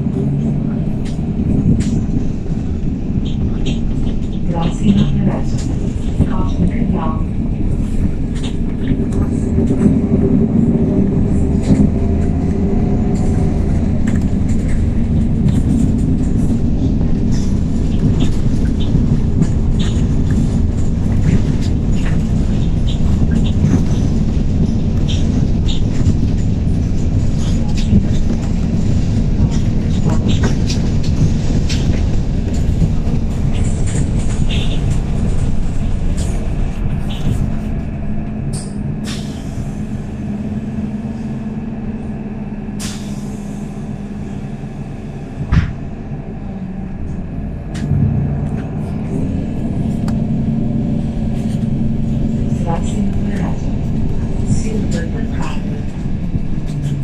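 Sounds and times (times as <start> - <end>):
body rattles and clicks: 0.0 - 39.3, 47.6 - 57.0
bus engine and road drone: 0.0 - 57.0.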